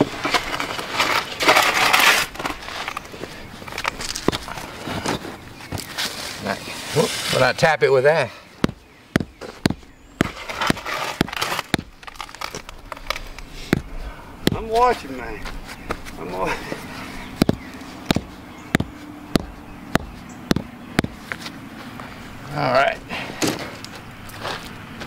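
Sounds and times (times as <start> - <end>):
rubber mallet knocking concrete block: 8.6 - 11.9, 13.7 - 14.7, 17.4 - 21.2
block and grit scraping: 10.2 - 15.1.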